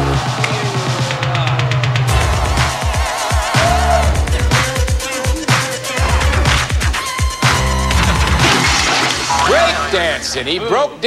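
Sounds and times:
synthesized game show music: 1.9 - 10.6
cartoon sound effects: 9.2 - 10.4
man speaking: 9.3 - 11.0.

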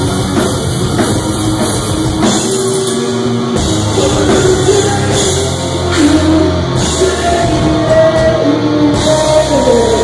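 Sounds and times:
live heavy rock band playing: 0.0 - 10.0.

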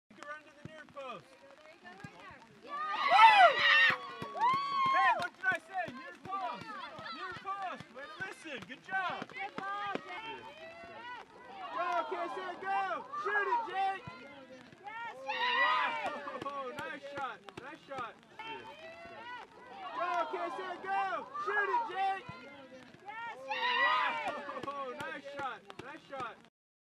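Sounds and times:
spectators cheering and shouting: 2.6 - 26.5.

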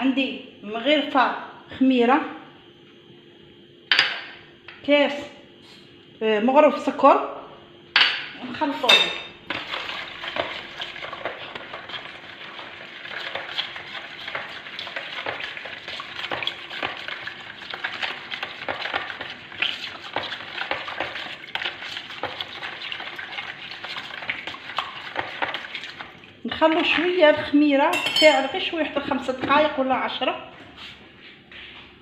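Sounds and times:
liquid swishing: 9.6 - 26.4.

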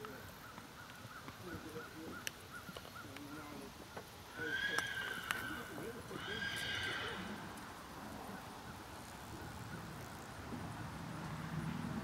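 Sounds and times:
horse whinnying: 4.3 - 7.4.

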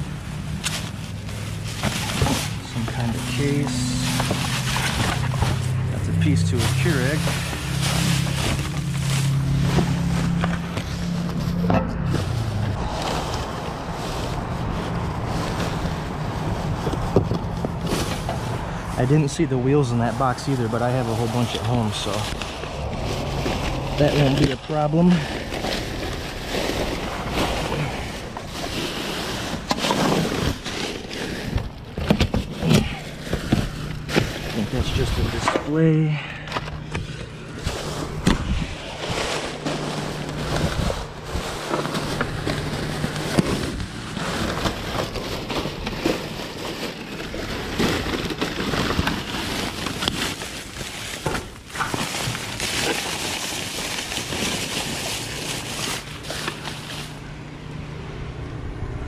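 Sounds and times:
sharp crackles and knocks: 0.0 - 19.0, 20.3 - 35.8, 36.4 - 57.3
steady low rumble: 0.0 - 49.8
plastic bags rustling: 0.0 - 57.8
steady low hum: 54.2 - 59.0.

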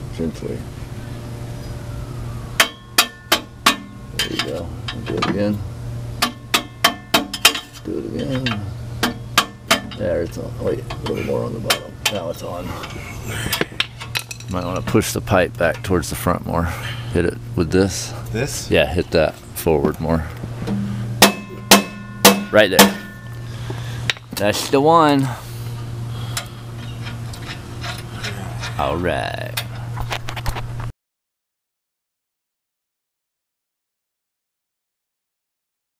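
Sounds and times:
steady low hum: 0.0 - 30.9
hammer tapping on metal pipe: 2.6 - 5.3, 6.2 - 7.7, 8.3 - 10.0, 20.7 - 23.3
hand tools clicking on metal: 6.2 - 10.0.

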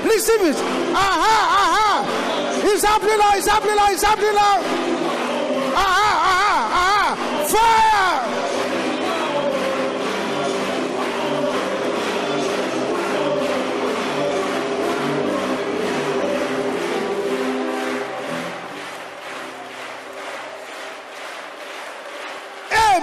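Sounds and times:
congregation praying aloud: 0.0 - 23.0
worship music with keyboard: 0.0 - 23.0.

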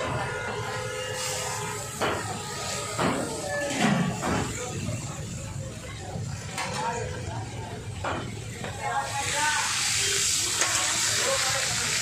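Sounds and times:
fish frying on griddle: 0.2 - 12.0.

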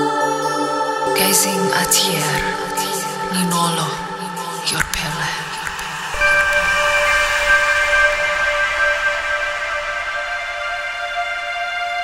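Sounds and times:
ambient music held chord: 0.0 - 12.0.

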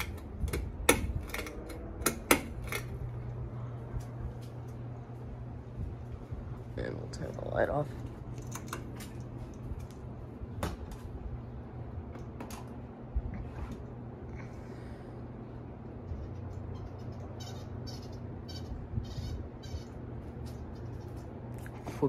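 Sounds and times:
fan clicks: 0.0 - 11.4, 12.0 - 14.7, 15.7 - 22.0
ceiling fan motor hum: 0.0 - 22.0.

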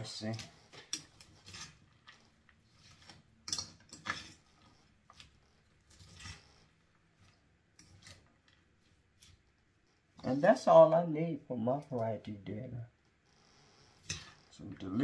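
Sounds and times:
fork tossing coleslaw in a bowl: 0.3 - 9.4.

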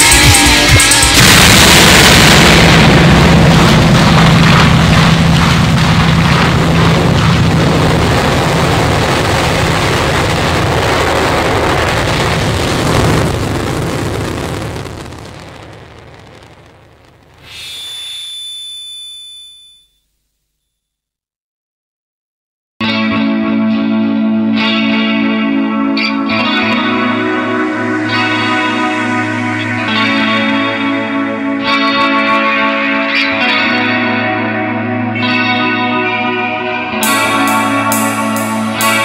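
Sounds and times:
distorted guitar rock music: 0.0 - 15.4, 22.8 - 39.0
ringing tone with overtones: 17.4 - 20.1, 37.0 - 39.0.

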